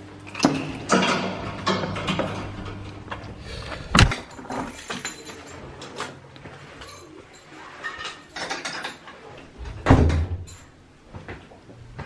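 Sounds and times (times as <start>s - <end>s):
rustling and footsteps: 11.0s - 12.0s.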